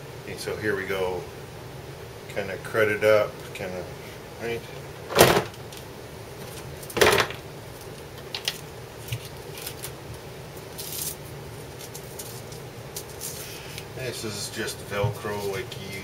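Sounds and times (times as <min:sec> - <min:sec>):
loud clunks in plastic case: 0:05.1 - 0:05.6, 0:07.0 - 0:07.4.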